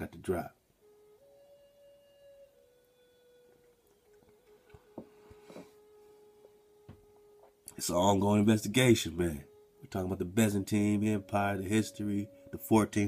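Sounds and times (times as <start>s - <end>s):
faint sustained tone: 0.0s - 13.0s.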